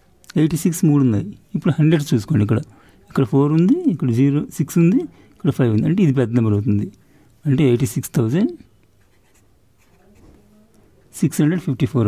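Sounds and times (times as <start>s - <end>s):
pen scratching on paper: 9.0s - 10.4s.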